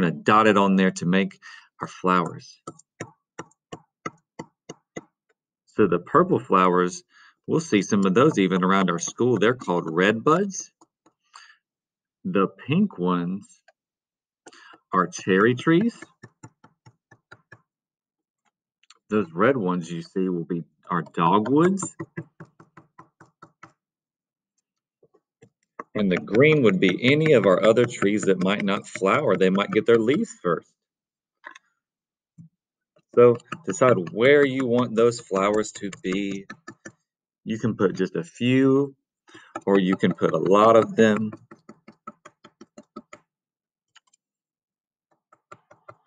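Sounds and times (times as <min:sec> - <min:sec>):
cork tapping on paper: 0:02.2 - 0:05.2, 0:07.6 - 0:11.5, 0:14.5 - 0:17.7, 0:21.0 - 0:23.8, 0:25.4 - 0:30.3, 0:33.2 - 0:37.0, 0:39.3 - 0:43.3, 0:45.2 - 0:46.0.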